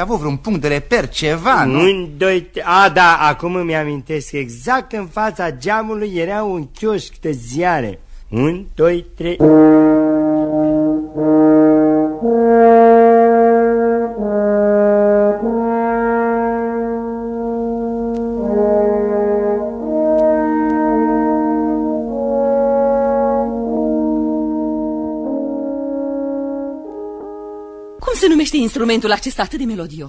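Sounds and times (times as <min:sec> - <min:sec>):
french horns playing held notes: 0:09.4 - 0:28.0.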